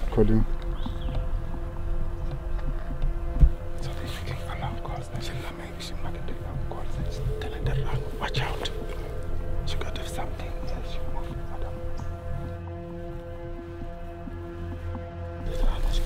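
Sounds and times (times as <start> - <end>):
music drone of held notes: 0.0 - 16.0
whispered speech: 3.8 - 8.9, 9.6 - 11.9, 15.5 - 16.0.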